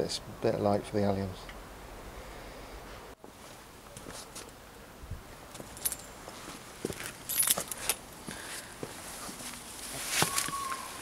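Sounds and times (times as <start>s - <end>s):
leaves rustling and crackling: 5.3s - 11.0s
light metallic jingling: 5.5s - 6.3s, 6.9s - 8.1s.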